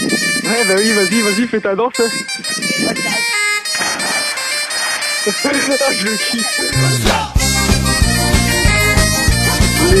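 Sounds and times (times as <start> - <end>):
person splashing into water: 3.7 - 4.4
loud background music: 3.7 - 10.0
person calling out: 5.8 - 7.3, 9.8 - 10.0.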